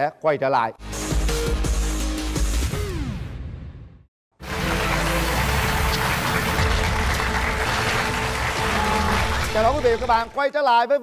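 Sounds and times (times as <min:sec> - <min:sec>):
background music: 0:00.8 - 0:11.0
audience applauding: 0:04.4 - 0:10.6.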